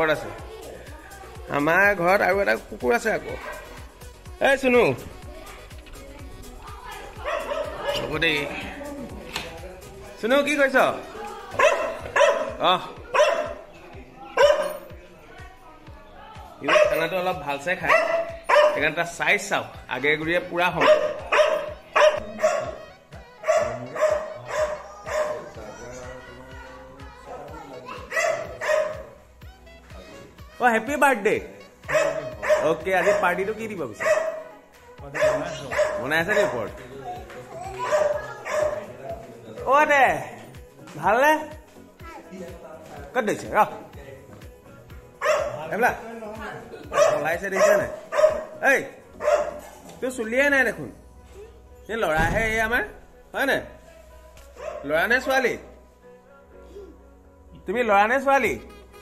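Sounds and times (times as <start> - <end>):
dog barking: 3.4 - 3.9, 7.2 - 8.5, 11.5 - 13.7, 14.3 - 14.9, 16.6 - 19.1, 20.7 - 25.6, 27.9 - 29.2, 31.8 - 36.8, 37.7 - 39.0, 45.2 - 46.0, 46.9 - 50.0, 54.5 - 55.0.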